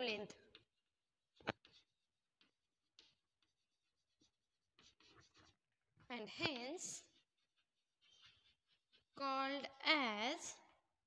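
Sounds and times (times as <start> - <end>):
chalk scratching on blackboard: 1.4 - 10.2.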